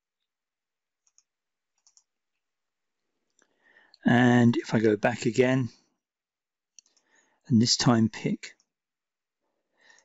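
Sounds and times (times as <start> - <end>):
computer mouse clicks: 1.0 - 2.1, 6.7 - 7.1.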